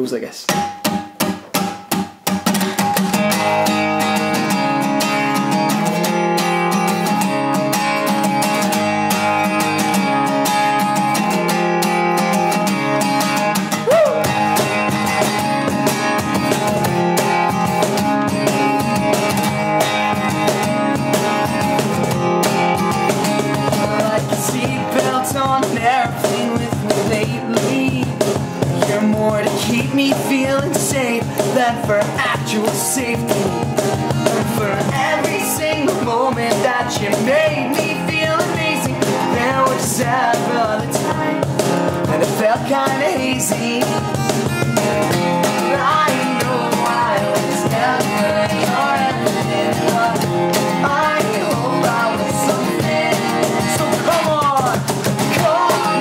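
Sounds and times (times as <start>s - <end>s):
cajon beat: 0.3s - 56.0s
strummed acoustic guitars: 0.4s - 56.0s
person singing: 13.7s - 14.9s, 23.5s - 56.0s.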